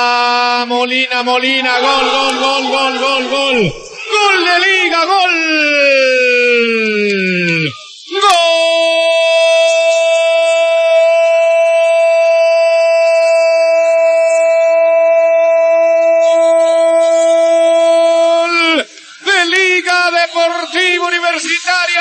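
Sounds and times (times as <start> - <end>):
fast excited speech: 0.6 - 11.5, 16.7 - 22.0
commentator's drawn-out cry: 1.4 - 11.5.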